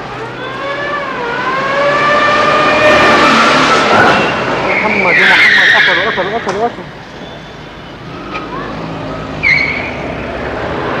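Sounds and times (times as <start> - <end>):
street traffic: 0.0 - 11.0
short high squeal: 7.2 - 8.2, 9.4 - 10.0.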